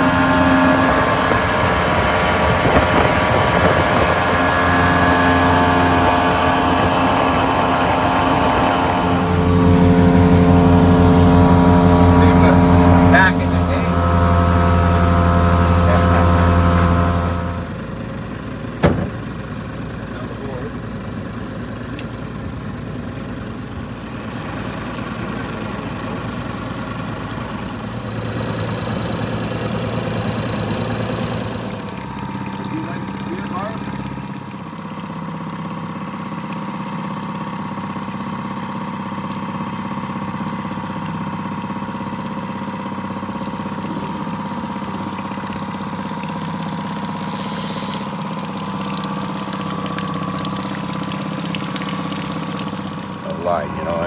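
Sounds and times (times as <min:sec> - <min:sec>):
outboard motor running: 0:00.0 - 0:54.0
water wash: 0:00.0 - 0:54.0.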